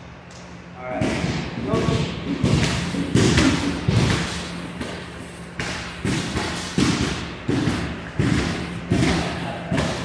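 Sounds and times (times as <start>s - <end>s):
thumps on padded mats: 5.6s - 10.0s.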